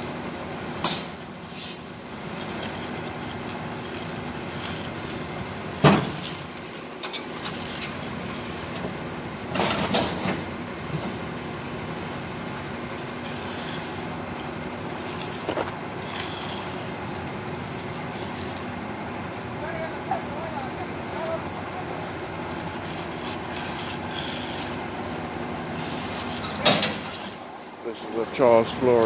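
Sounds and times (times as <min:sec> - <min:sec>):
truck engine running: 0:00.0 - 0:29.0.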